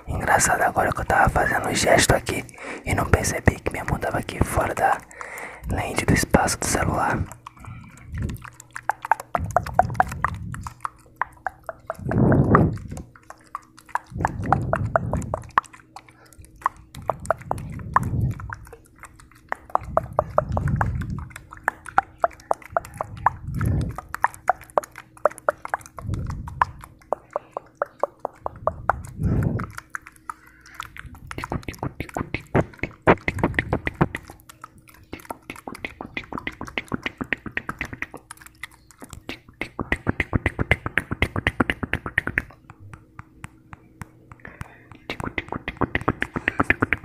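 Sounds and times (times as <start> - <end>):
faint steady hum: 0.0 - 47.0
small clicks and pops: 3.1 - 47.0.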